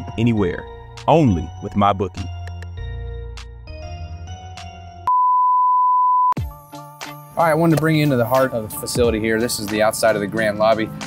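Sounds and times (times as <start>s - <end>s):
background music with held notes: 0.0s - 5.1s, 6.4s - 11.0s.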